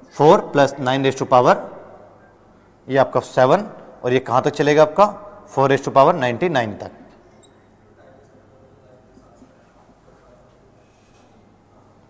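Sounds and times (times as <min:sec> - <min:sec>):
marker squeak: 0:07.3 - 0:07.6.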